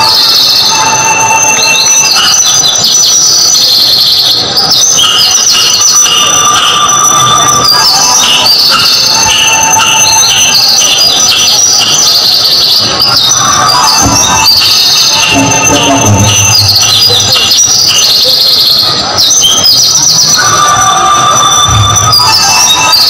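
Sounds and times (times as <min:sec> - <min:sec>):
shrill distorted tones over loudspeaker: 0:00.0 - 0:23.0.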